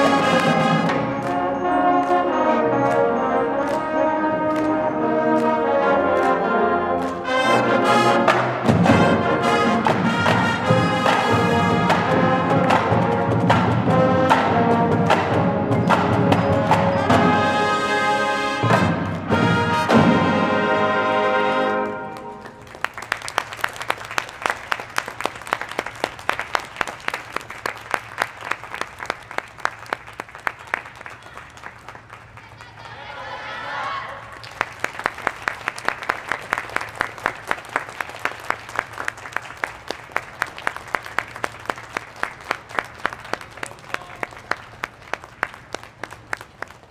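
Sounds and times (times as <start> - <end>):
audience clapping in unison: 21.8 - 32.9, 34.2 - 46.9.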